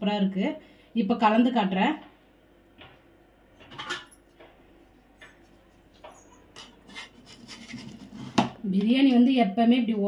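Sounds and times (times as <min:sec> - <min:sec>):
ladle scraping metal pot: 0:06.1 - 0:08.4.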